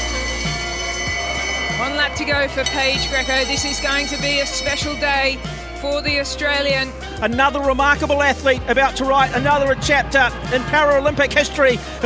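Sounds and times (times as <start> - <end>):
held high electronic tone: 0.0 - 6.3.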